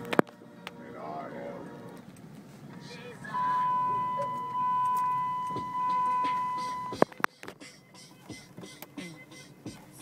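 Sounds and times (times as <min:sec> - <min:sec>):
car running noise: 0:00.0 - 0:10.0
high-pitched tone: 0:02.8 - 0:07.1.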